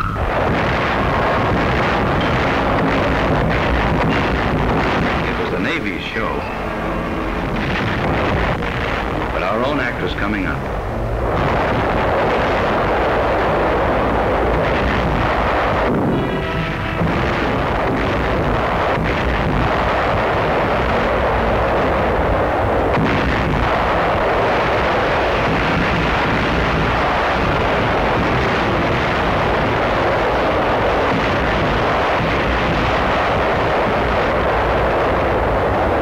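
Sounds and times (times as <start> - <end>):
heavy naval gunfire and explosions: 0.0 - 36.0.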